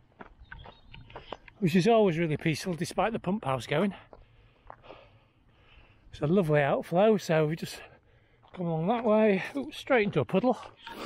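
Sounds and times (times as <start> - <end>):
soft breath: 4.0 - 6.1.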